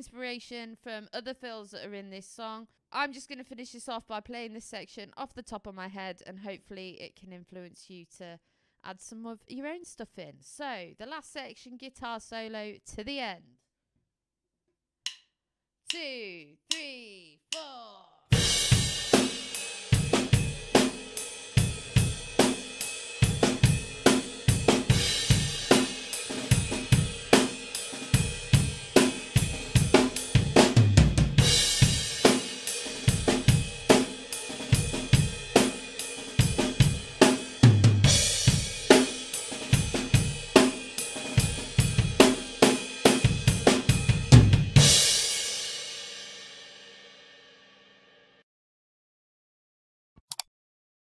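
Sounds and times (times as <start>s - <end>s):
sharp count-in click: 15.9s - 16.1s, 50.2s - 50.5s
rock drum kit groove: 18.3s - 46.5s.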